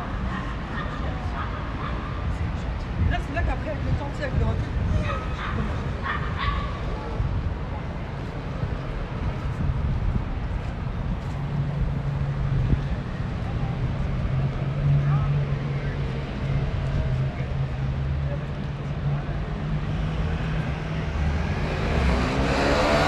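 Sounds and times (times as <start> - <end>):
car traffic passing: 0.0 - 23.0
pedestrians' voices: 0.0 - 23.0.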